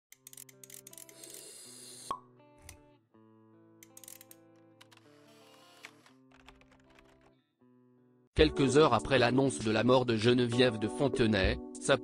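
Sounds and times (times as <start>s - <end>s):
background music: 0.1s - 12.0s.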